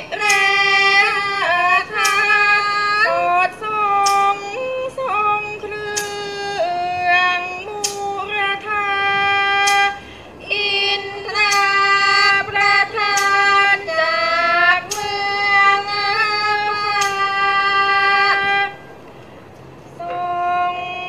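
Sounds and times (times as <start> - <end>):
sharp percussion strikes: 0.0 - 8.7, 11.0 - 17.8
woman singing long sliding notes: 0.0 - 19.0, 19.9 - 21.0.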